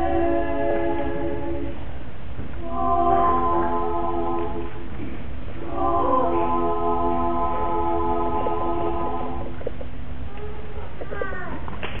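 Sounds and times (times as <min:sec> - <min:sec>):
low rumble: 0:00.0 - 0:10.3.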